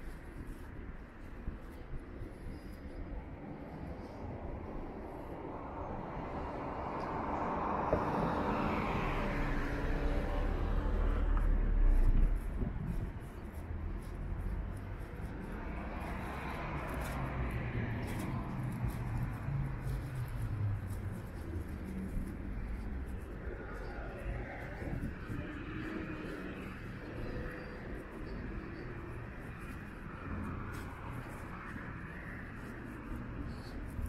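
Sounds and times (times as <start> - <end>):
car passing close by: 6.2 - 12.2.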